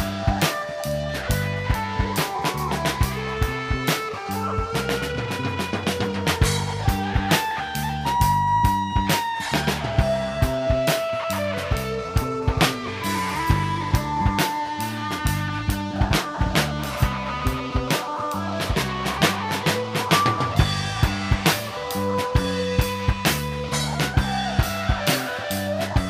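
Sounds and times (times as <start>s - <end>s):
drum kit beat: 0.0s - 26.0s
lead guitar held bending notes: 0.0s - 26.0s
live rock band playing: 0.0s - 26.0s.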